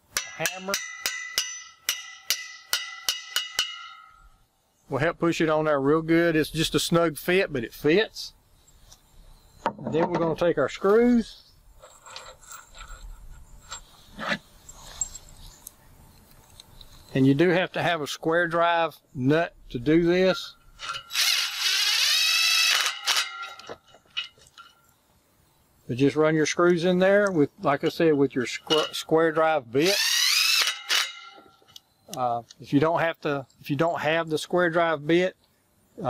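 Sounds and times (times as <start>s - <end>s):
small screws clicking and rubbing: 11.8s - 17.1s
cordless drill whine: 21.1s - 23.2s, 29.9s - 31.1s.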